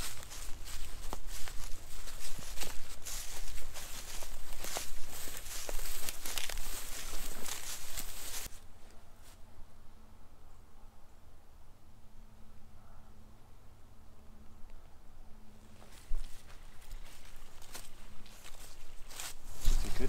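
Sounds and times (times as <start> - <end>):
vegetation brushing: 0.0 - 9.4, 15.7 - 20.0
footsteps through dry grass: 0.0 - 9.5, 15.6 - 20.0.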